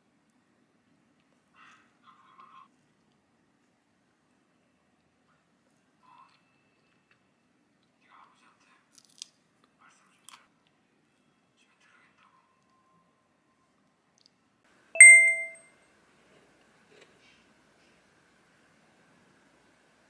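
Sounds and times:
loud bright ding: 15.0s - 15.6s.

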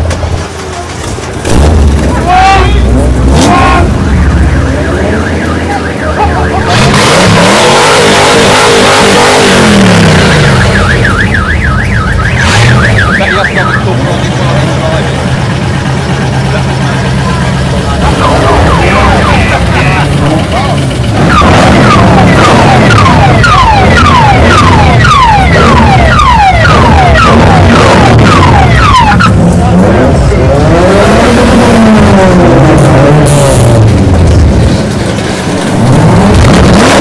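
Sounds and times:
car engine revving and idling: 0.0s - 37.0s.

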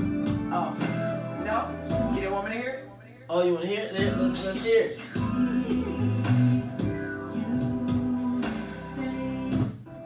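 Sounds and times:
music through studio speakers: 0.0s - 10.0s.

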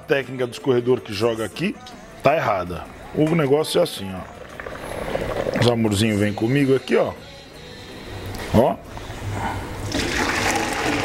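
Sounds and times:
water pouring into a sink: 9.8s - 11.0s.

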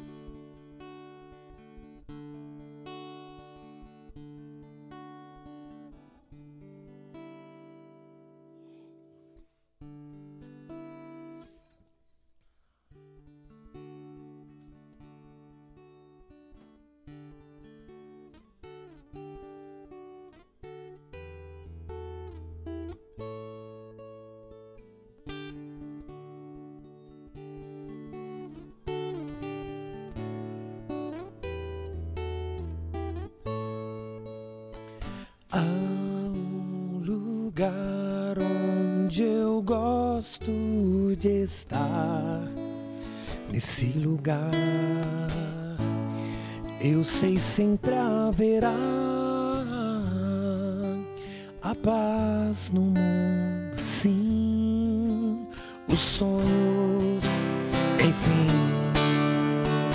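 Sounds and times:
acoustic guitar picking: 0.0s - 59.9s.

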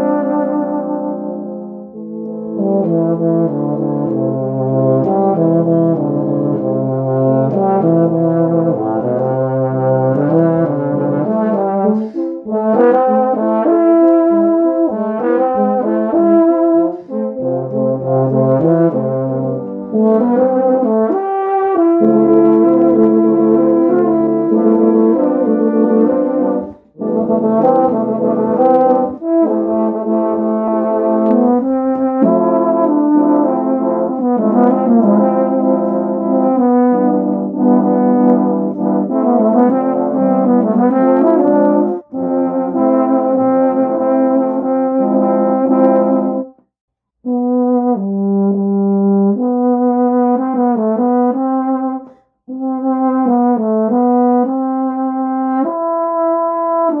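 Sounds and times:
layered euphoniums playing: 0.0s - 46.5s.

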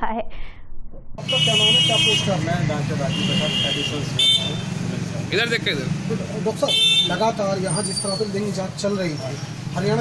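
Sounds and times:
vehicle horns: 1.2s - 4.8s, 6.6s - 8.3s
traffic engine hum: 1.2s - 10.0s.

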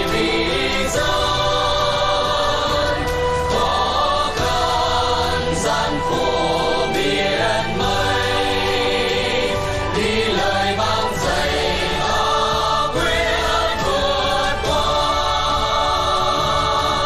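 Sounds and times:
mixed choir singing: 0.0s - 17.0s.

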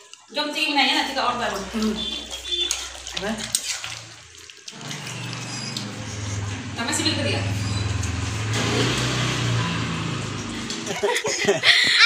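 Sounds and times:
engine running with low hum: 4.8s - 11.1s.

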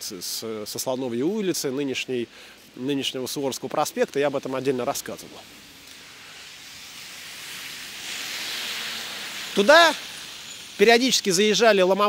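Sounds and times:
traffic hiss on wet road: 0.0s - 12.0s
bus approaching: 5.3s - 11.4s.

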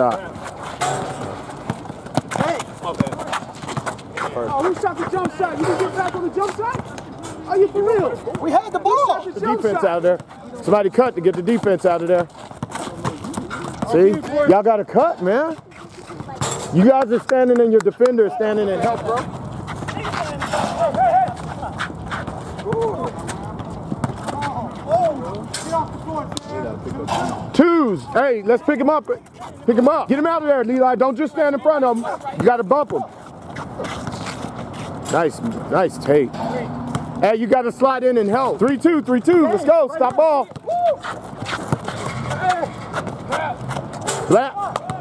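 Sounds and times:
sneakers hitting asphalt: 0.0s - 8.6s, 15.4s - 26.6s, 38.2s - 45.0s
basketball bouncing: 0.8s - 7.0s, 22.3s - 24.6s, 36.8s - 37.2s
players shouting: 4.3s - 10.6s, 18.0s - 23.5s, 38.2s - 45.0s.

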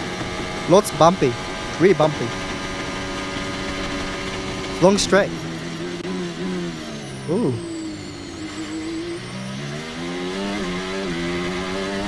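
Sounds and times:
racing car engine at full throttle: 0.0s - 12.0s.

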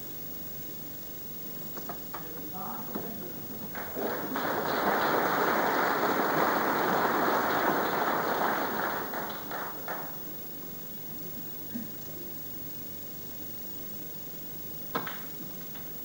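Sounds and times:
audience applauding: 3.6s - 10.4s.

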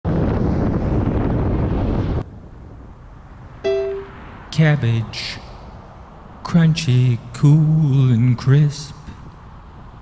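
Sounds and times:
wind buffeting microphone: 0.1s - 2.9s
vehicle noise: 1.7s - 7.7s.

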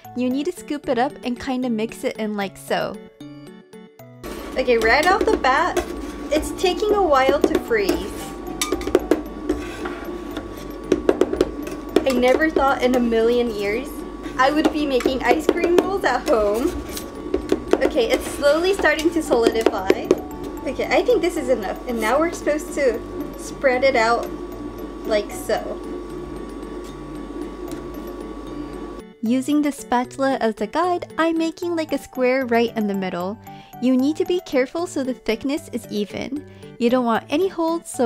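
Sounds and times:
machine humming: 4.2s - 29.2s
spatulas scraping metal plate: 4.3s - 13.0s, 14.2s - 20.1s.

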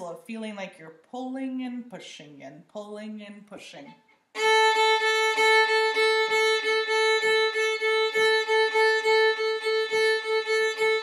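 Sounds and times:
violin bowing one steady note: 4.4s - 11.0s.

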